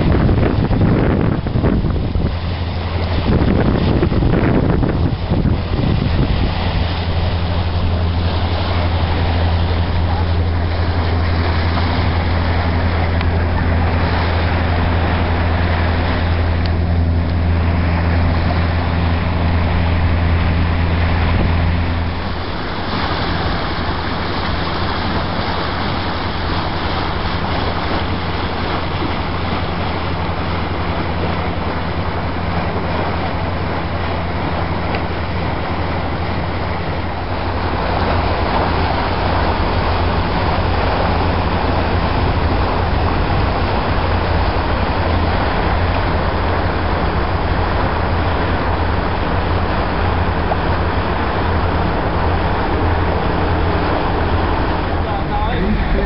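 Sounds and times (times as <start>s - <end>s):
boat engine droning: 0.0s - 56.0s
water rushing along hull: 0.0s - 56.0s
wind on microphone: 0.0s - 56.0s.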